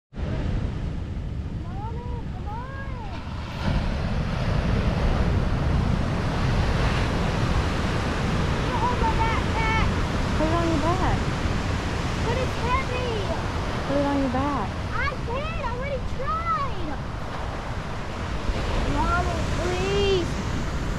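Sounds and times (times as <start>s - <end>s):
wind rumbling on microphone: 0.1s - 20.9s
surf breaking on rocky shore: 0.2s - 20.9s.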